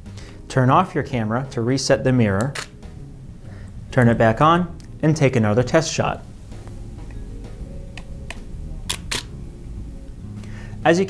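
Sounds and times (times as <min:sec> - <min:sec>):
camera handling clicks: 0:08.0 - 0:09.3
camera shutter clicks: 0:08.9 - 0:09.3.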